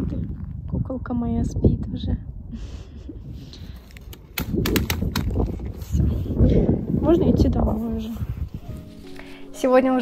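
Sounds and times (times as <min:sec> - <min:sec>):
wind buffeting microphone: 0:00.0 - 0:09.0
fabric hood rustling: 0:07.6 - 0:10.0.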